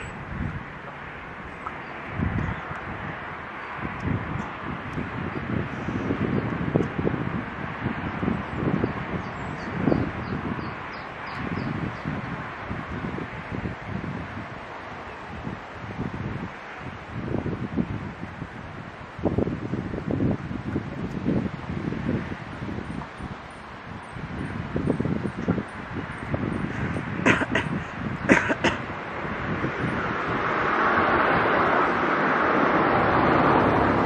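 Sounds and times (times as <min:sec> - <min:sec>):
wind gusts on microphone: 0:00.0 - 0:34.0
wind through leaves: 0:00.0 - 0:34.0.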